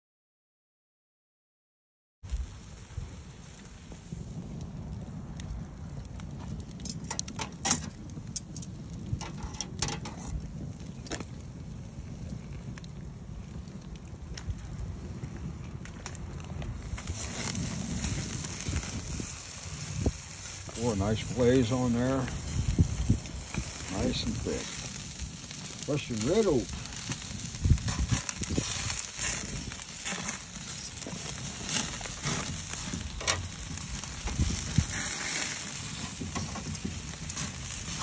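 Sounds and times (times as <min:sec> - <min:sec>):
food sizzling on a grill: 0:02.3 - 0:04.6, 0:06.3 - 0:11.3, 0:16.8 - 0:38.0
wood fire crackling: 0:02.3 - 0:38.0.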